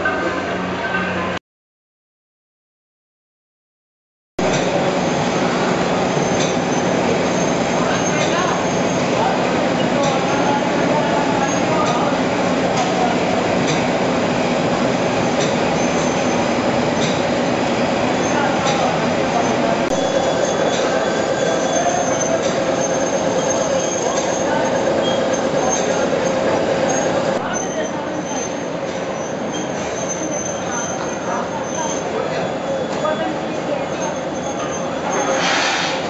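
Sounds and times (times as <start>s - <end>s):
machine rollers clattering: 4.4s - 36.0s
sustained squealing tone: 19.2s - 35.4s.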